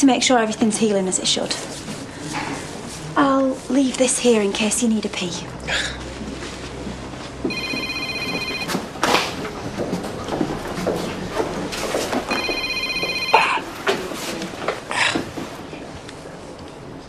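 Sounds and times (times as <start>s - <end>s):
mobile phone ringing: 7.5s - 8.9s, 12.3s - 13.6s.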